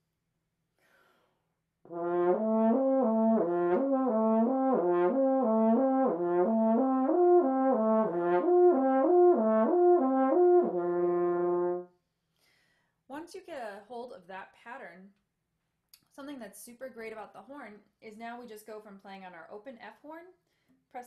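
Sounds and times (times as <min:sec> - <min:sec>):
french horn slurred notes: 0:01.9 - 0:11.9.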